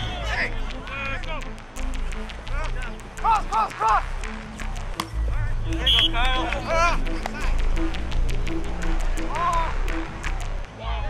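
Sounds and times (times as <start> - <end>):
player shouting: 3.2 - 4.0, 9.3 - 9.8.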